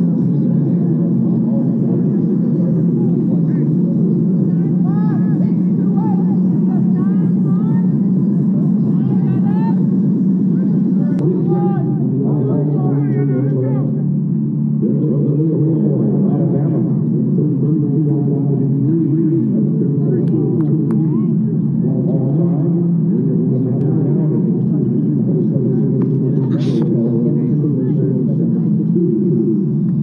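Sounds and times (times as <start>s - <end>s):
crowd rumble: 0.0s - 30.0s
indistinct crowd voices: 0.0s - 30.0s.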